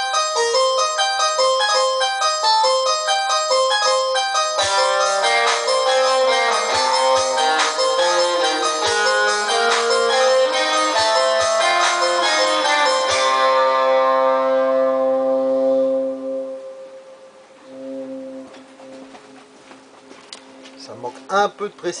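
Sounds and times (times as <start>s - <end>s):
rock-pop band playing: 4.6s - 16.0s.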